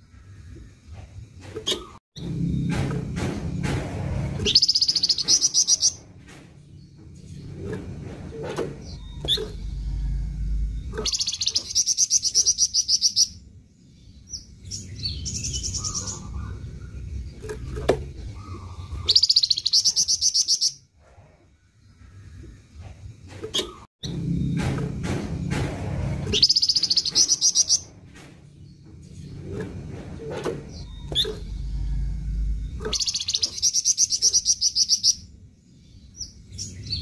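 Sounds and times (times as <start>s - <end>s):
low steady hum: 6.7s - 19.2s, 28.1s - 34.5s
songbird trilling: 10.9s - 13.4s, 18.3s - 20.8s, 32.6s - 35.3s.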